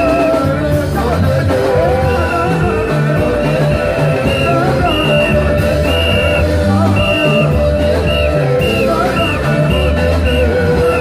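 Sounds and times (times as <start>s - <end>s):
band playing upbeat praise music: 0.0s - 11.0s
bass line: 0.0s - 11.0s.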